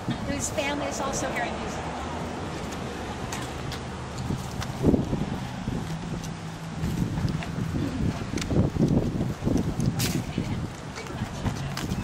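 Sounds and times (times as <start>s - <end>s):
wind buffeting microphone: 3.5s - 12.0s.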